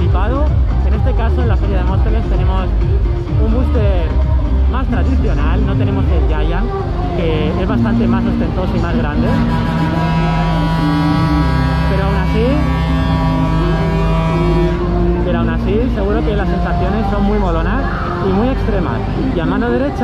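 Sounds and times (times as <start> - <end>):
music from loudspeakers: 0.0 - 20.0
buzzing horn-like tone: 7.8 - 19.4.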